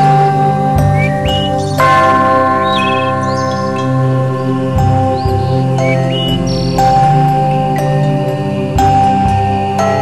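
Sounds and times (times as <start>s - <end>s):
ringing bell-like tones: 0.0s - 10.0s
high gliding notes: 0.8s - 8.8s.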